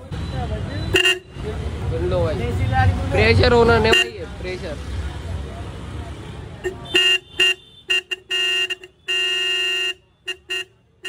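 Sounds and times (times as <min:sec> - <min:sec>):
motorcycle horn blasts: 0:00.9 - 0:01.3, 0:06.6 - 0:11.0.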